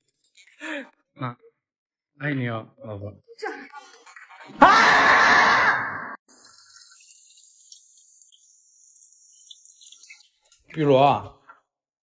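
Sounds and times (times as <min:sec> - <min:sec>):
animal screaming: 0:04.5 - 0:06.2
tap water running into sink: 0:06.3 - 0:10.9.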